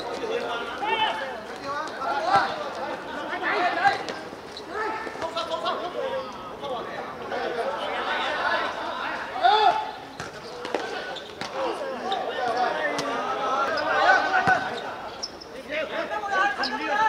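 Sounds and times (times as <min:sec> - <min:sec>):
ball kicked and bouncing: 0:14.4 - 0:14.7.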